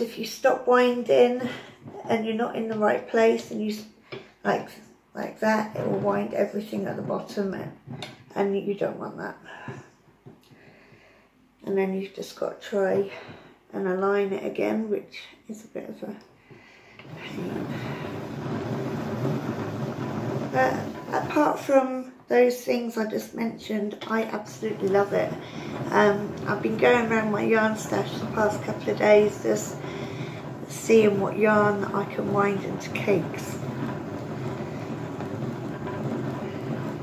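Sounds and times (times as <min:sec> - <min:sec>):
yarn winder mechanical whir: 0:17.0 - 0:21.6, 0:23.7 - 0:37.0.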